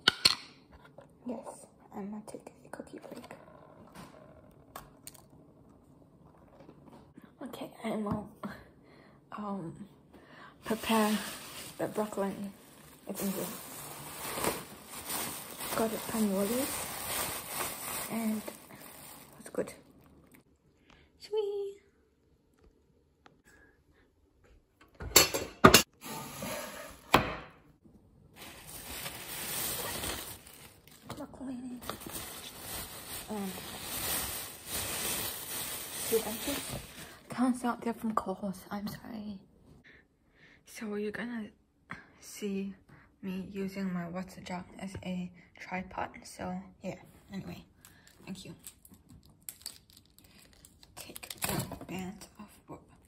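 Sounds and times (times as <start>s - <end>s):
plastic bag crinkling: 10.7s - 20.4s, 28.4s - 37.2s, 48.6s - 51.4s.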